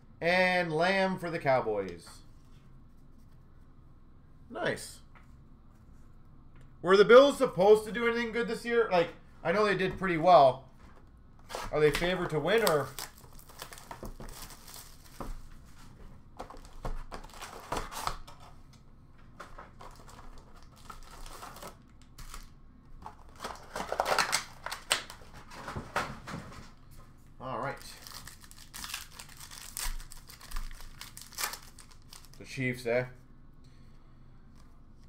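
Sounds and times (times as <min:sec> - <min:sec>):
foil wrappers crinkling and tearing: 0:11.7 - 0:15.3, 0:16.5 - 0:18.3, 0:19.7 - 0:25.4, 0:27.6 - 0:32.5.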